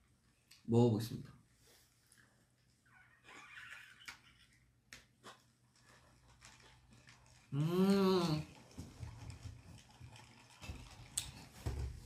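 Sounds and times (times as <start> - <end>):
slurping through a straw: 5.2 - 11.6.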